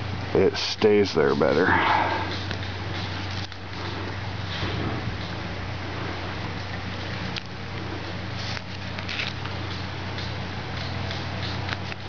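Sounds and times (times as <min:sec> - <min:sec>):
steady low hum: 0:00.0 - 0:12.0
netting cord rustling and scraping: 0:01.4 - 0:09.7.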